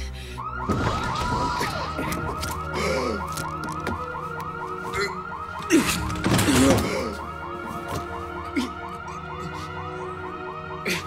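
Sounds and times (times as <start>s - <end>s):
electronic alarm warbling: 0.4s - 5.8s.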